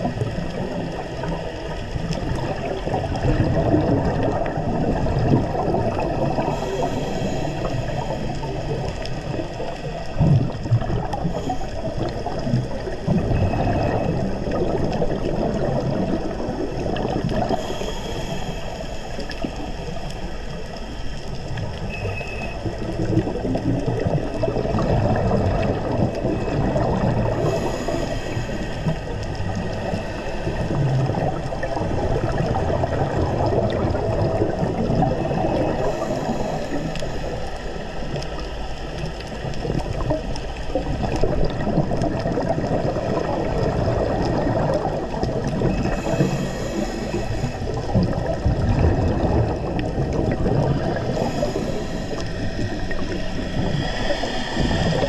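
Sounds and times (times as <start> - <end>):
exhaled bubbles gurgling: 0.0 - 55.0
diver regulator breathing: 4.4 - 15.1, 17.3 - 21.2, 24.7 - 55.0.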